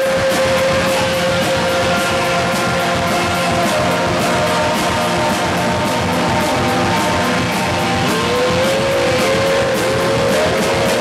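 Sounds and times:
guitar line with bending notes: 0:00.0 - 0:11.0
rock band playing loudly: 0:00.0 - 0:11.0.

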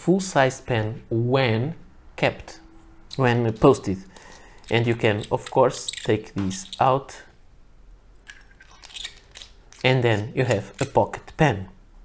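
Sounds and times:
pen threads clicking: 0:03.1 - 0:06.9.

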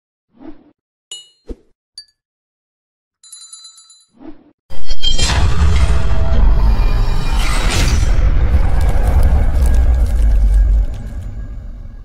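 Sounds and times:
deep cinematic rumble: 0:05.2 - 0:12.0
crackling sparkle: 0:07.8 - 0:12.0.

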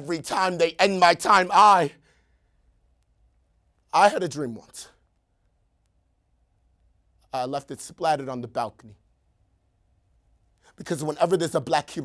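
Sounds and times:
young man speaking: 0:00.0 - 0:02.0, 0:03.9 - 0:05.0, 0:07.3 - 0:09.0, 0:10.8 - 0:12.0
faint low room hum: 0:00.0 - 0:12.0.

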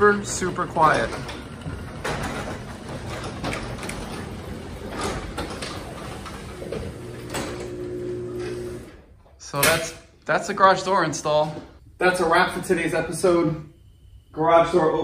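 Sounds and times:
low motor hum: 0:00.0 - 0:08.9
garage door rolling in tracks: 0:00.0 - 0:09.1.

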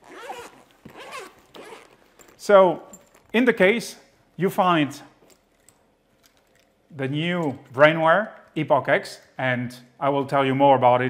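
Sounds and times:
zipper pulled open: 0:00.0 - 0:03.3.

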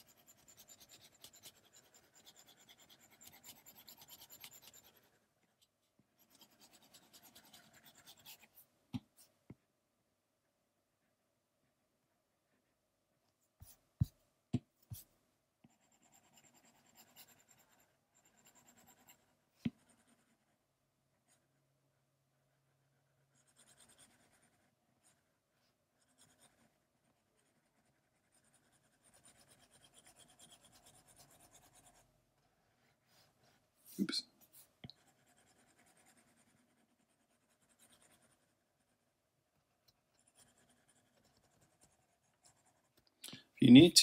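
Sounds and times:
stylus scratching on glass screen: 0:00.0 - 0:05.2, 0:06.2 - 0:08.6, 0:27.4 - 0:32.1.

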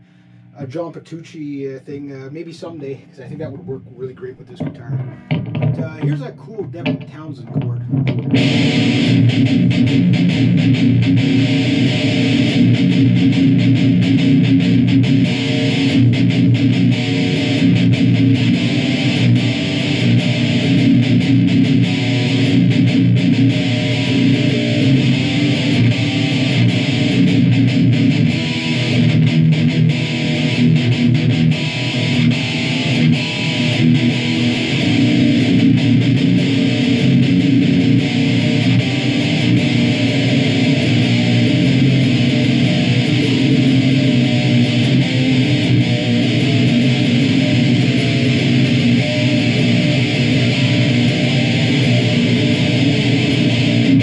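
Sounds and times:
distorted electric guitar riffs: 0:00.0 - 0:54.0.

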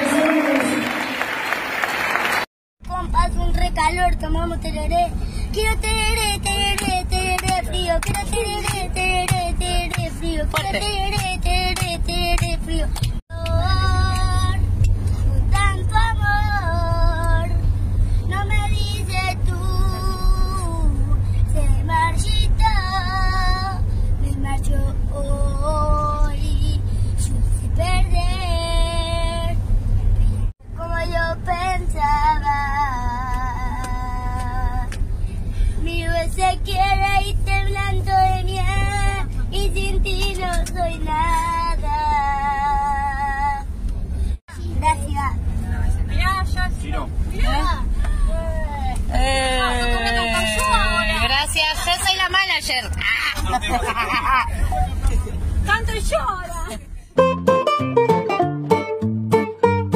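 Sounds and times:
boy singing with vibrato: 0:02.8 - 0:17.6, 0:30.7 - 0:34.9
bus rumble: 0:02.8 - 0:59.9.

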